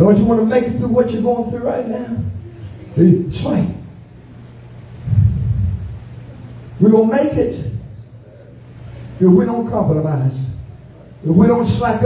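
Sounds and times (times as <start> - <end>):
steady low hum: 0.0 - 12.0
muffled low rumble: 4.8 - 6.8.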